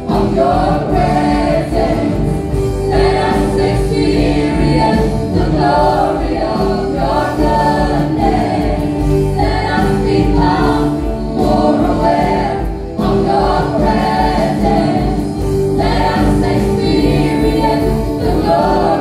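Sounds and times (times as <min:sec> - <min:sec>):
held keyboard chords: 0:00.0 - 0:19.0
steady bass line: 0:00.0 - 0:19.0
vocalists singing worship song: 0:00.0 - 0:19.0.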